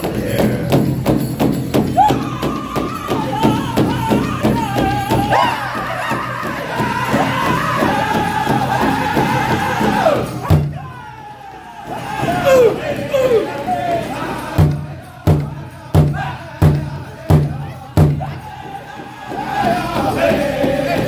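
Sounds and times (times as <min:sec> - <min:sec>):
high-pitched group singing: 0:00.0 - 0:01.0, 0:01.9 - 0:21.0
large drum steady beat: 0:00.0 - 0:21.0.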